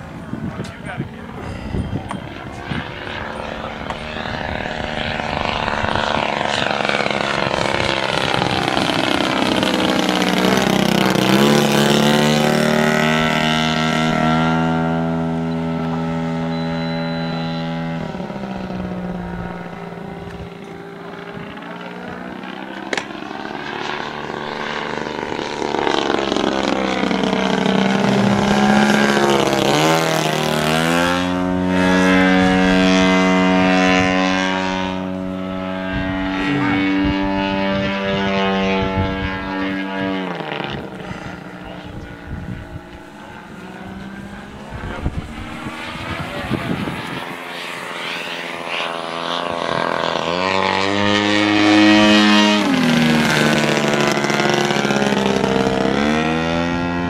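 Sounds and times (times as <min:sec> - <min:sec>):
model airplane motor and propeller: 0:00.0 - 0:57.0.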